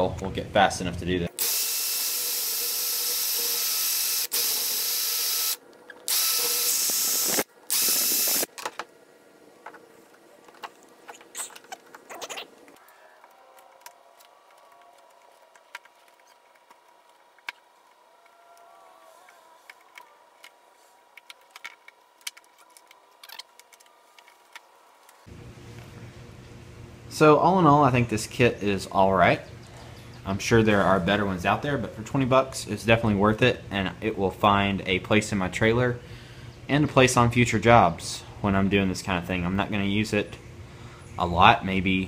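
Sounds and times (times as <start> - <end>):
cordless drill spinning: 1.4 - 8.5.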